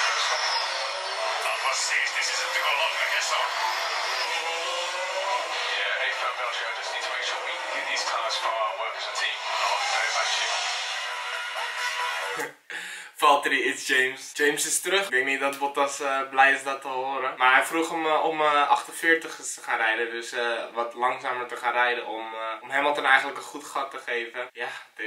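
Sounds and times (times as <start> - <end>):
racing car engine running: 0.0 - 12.4
voices over radio: 1.2 - 3.8, 5.3 - 10.7.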